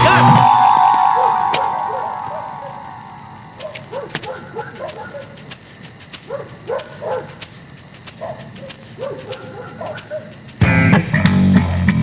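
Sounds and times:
loud guitar music: 0:00.0 - 0:03.9, 0:09.2 - 0:12.0
film score with ticking beat: 0:00.0 - 0:12.0
small dog yapping: 0:03.6 - 0:05.6, 0:06.2 - 0:07.4, 0:08.1 - 0:10.4.

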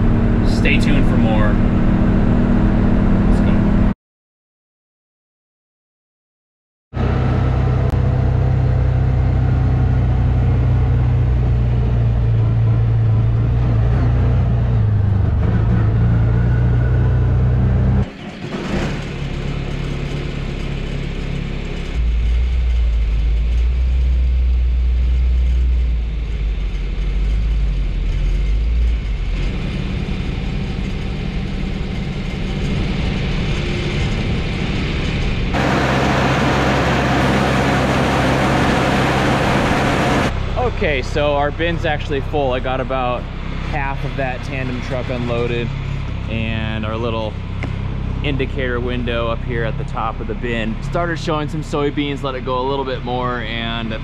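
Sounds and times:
tractor engine running: 0:00.0 - 0:02.5, 0:07.0 - 0:54.0
utility vehicle engine running: 0:07.0 - 0:54.0.

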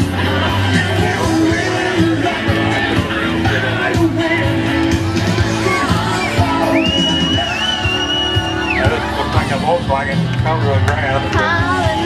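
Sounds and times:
crowd shouting: 0:00.0 - 0:09.8
live rock band playing: 0:00.0 - 0:12.0
high whistle-like tone: 0:06.1 - 0:08.9.

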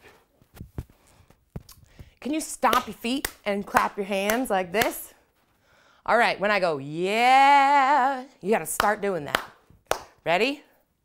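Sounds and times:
hands and feet on tiled floor: 0:00.0 - 0:02.1.

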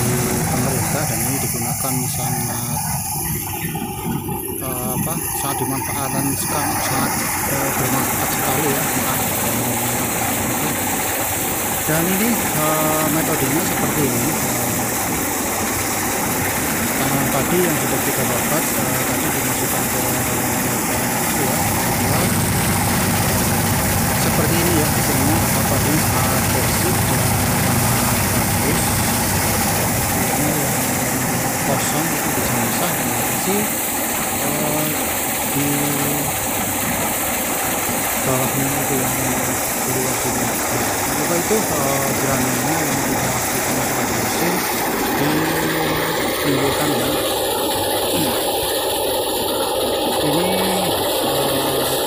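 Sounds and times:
thresher engine hum: 0:00.0 - 0:52.0.

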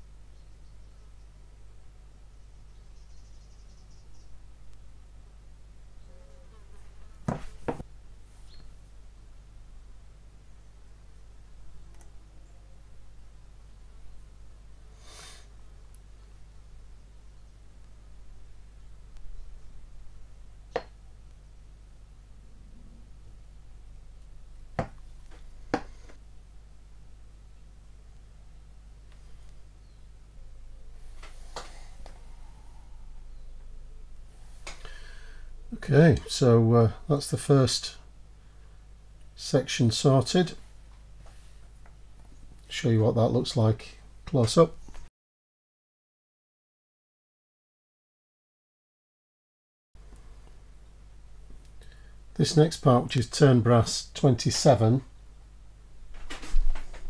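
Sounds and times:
faint low hum: 0:00.0 - 0:45.1, 0:50.0 - 0:57.0.

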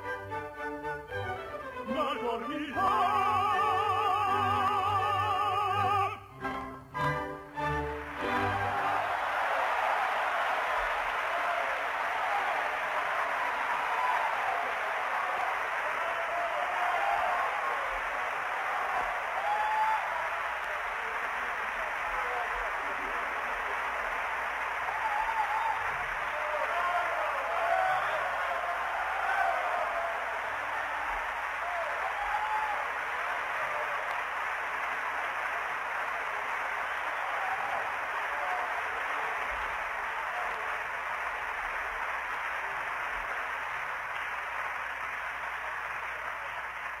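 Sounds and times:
audience applauding: 0:00.0 - 0:47.0.

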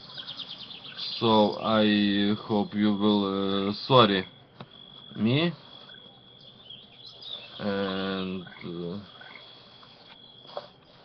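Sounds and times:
steady high-pitched tone: 0:00.0 - 0:11.0.

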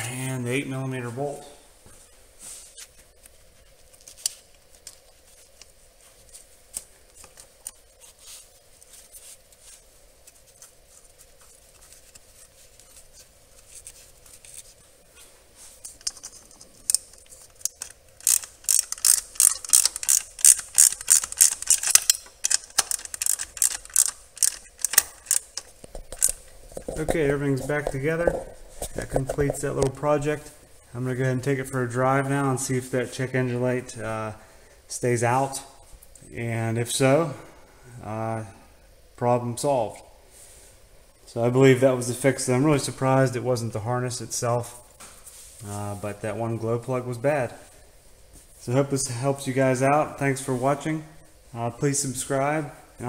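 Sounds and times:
faint steady hum: 0:00.0 - 0:53.0
parts being handled: 0:01.8 - 0:30.6
ratchet wrench clicking: 0:17.7 - 0:26.3.

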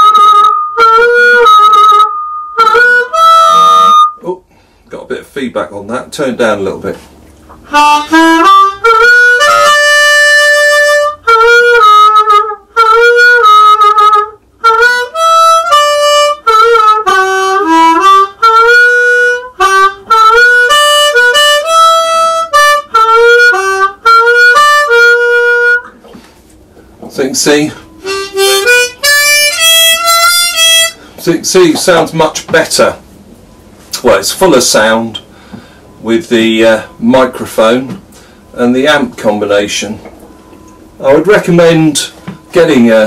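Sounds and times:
amplified harmonica phrases: 0:00.0 - 0:04.8, 0:07.5 - 0:32.9.

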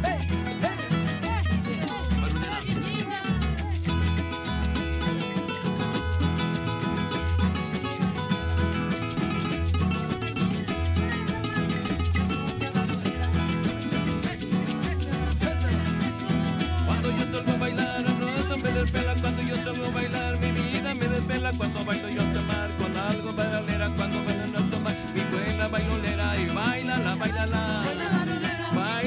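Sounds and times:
bass line: 0:00.0 - 0:28.8
acoustic guitars strumming: 0:00.0 - 0:29.0
hand-percussion rattle: 0:00.0 - 0:29.0.

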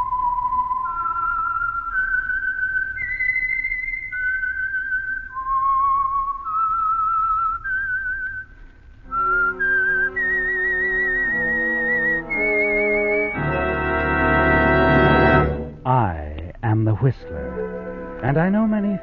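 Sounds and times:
person whistling slow melody: 0:00.0 - 0:08.5, 0:09.1 - 0:14.7
organ and band chords: 0:11.3 - 0:15.8.

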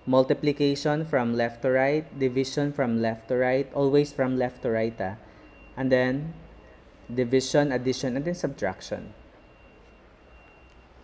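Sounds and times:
high-pitched steady whine: 0:00.0 - 0:11.0.

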